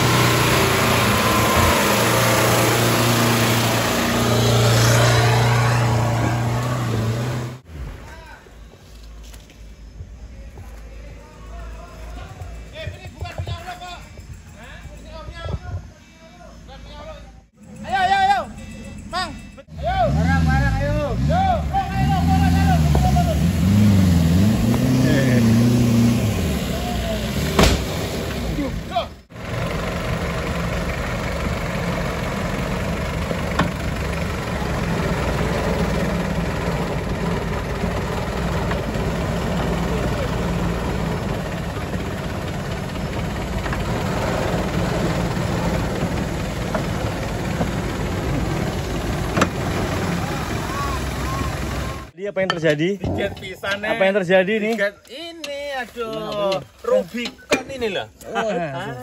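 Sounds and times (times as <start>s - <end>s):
off-road vehicle engine: 0.0s - 15.9s, 16.5s - 59.0s.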